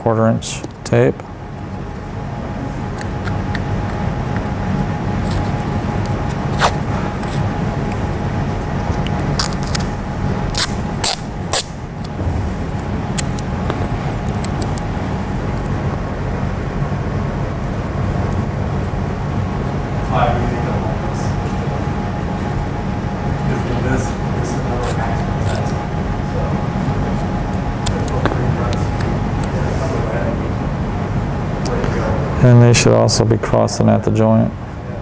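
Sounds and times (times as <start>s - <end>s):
low background rumble: 0.0s - 35.0s
athletic tape tearing and clicking: 5.2s - 8.0s, 8.9s - 12.2s, 14.2s - 14.9s, 24.8s - 25.8s.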